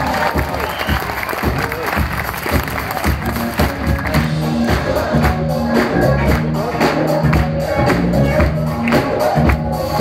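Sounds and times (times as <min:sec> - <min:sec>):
audience applause: 0:00.0 - 0:06.5
crowd noise: 0:00.0 - 0:10.0
drum beats: 0:00.0 - 0:10.0
low bass notes: 0:02.6 - 0:10.0.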